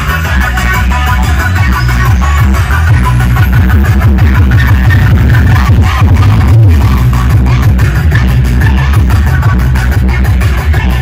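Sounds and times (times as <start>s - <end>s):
dance music with heavy bass beat: 0.0s - 11.0s.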